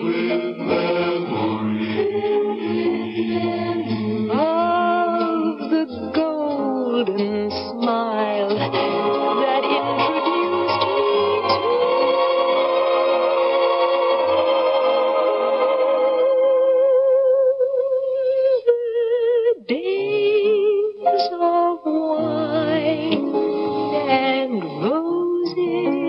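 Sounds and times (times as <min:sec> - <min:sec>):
grand piano accompaniment: 0:00.0 - 0:16.2, 0:21.1 - 0:24.4
woman singing slow ballad: 0:04.3 - 0:08.7, 0:17.0 - 0:23.3, 0:24.1 - 0:26.0.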